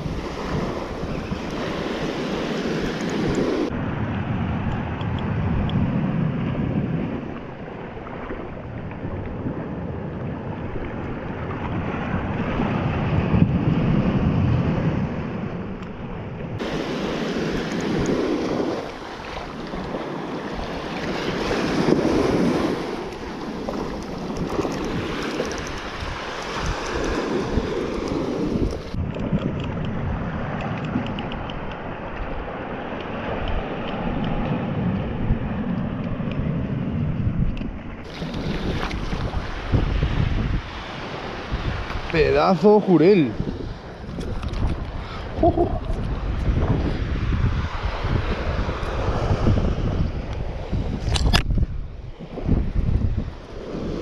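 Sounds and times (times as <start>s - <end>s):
small waves breaking on shore: 0.0s - 4.6s, 6.0s - 29.0s, 37.9s - 54.0s
wind buffeting microphone: 0.0s - 54.0s.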